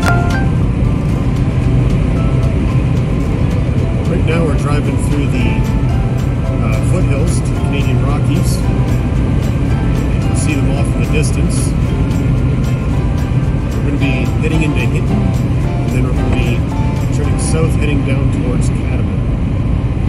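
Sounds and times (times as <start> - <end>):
music: 0.0 - 18.8
car engine and road drone: 0.0 - 20.0.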